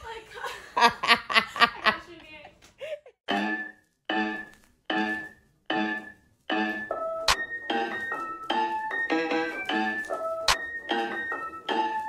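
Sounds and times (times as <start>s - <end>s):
woman laughing: 0.0s - 3.2s.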